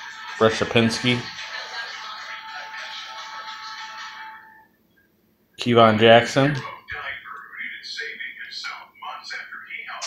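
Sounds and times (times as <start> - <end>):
background music: 0.0 - 4.7
television audio: 0.0 - 10.0.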